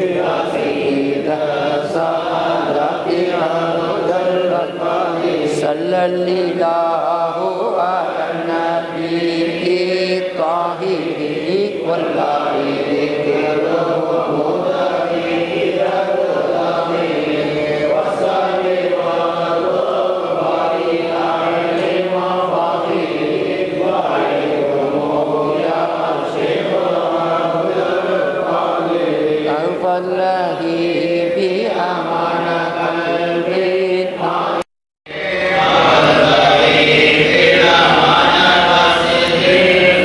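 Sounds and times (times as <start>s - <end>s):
men chanting together: 0.0s - 40.0s.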